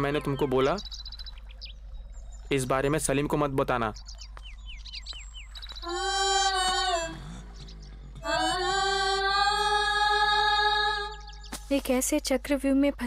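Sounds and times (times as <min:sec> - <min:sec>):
film score held melodic notes: 0:00.0 - 0:11.6.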